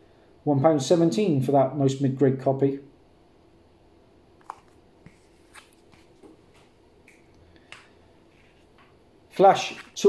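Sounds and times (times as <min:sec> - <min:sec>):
handling plastic sleeve: 0:04.4 - 0:06.7.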